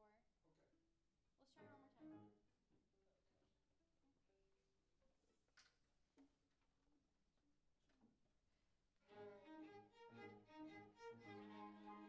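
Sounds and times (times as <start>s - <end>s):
string ensemble held notes: 9.1s - 12.0s.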